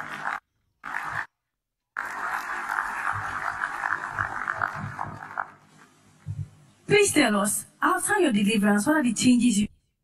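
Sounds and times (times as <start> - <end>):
crackly muffled broadcast noise: 2.0 - 7.1.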